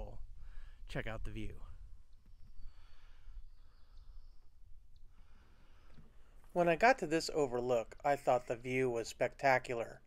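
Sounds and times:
wind rumble on microphone: 0.0 - 2.7.

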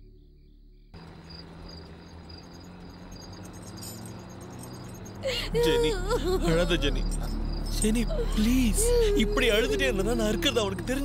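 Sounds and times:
crickets chirping: 0.0 - 11.0
drone with pulsing tones: 0.0 - 11.0.

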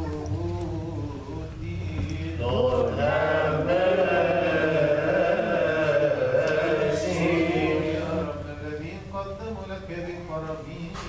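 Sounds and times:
voices singing liturgical chant: 0.4 - 11.0.

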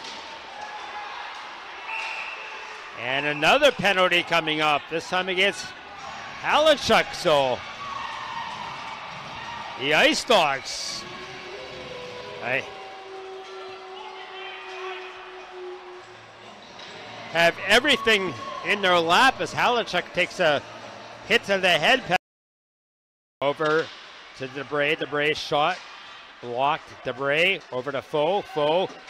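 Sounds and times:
arena noise: 0.0 - 22.2.

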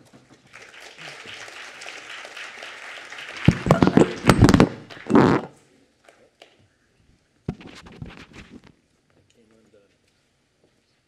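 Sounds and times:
audience applauding: 0.5 - 5.4
thumps on lectern microphone: 3.5 - 5.5.

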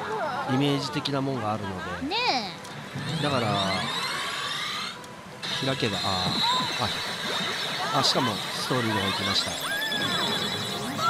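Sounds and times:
steady high electronic tone: 7.8 - 11.0.

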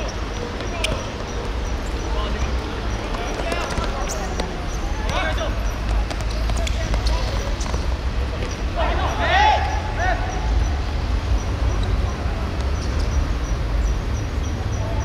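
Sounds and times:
players shouting: 0.0 - 13.2.

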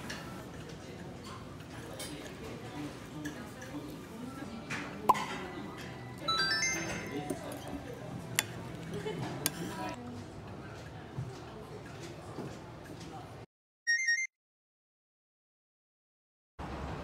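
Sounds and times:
murmur of voices: 0.1 - 13.4
rising chime notes: 6.3 - 7.3.

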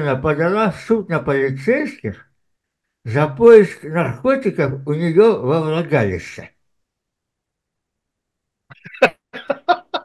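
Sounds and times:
man laughing in breathy bursts: 8.7 - 10.0.

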